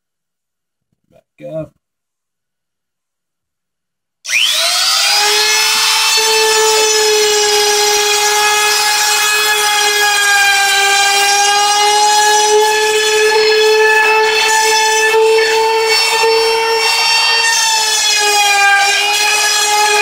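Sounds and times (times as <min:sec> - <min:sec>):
trim router whining: 0:04.3 - 0:20.0.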